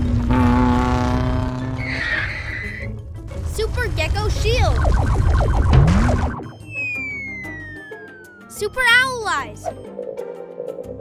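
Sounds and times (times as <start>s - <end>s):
cartoon action music: 3.6s - 9.9s
falling whistle tone: 4.8s - 8.5s.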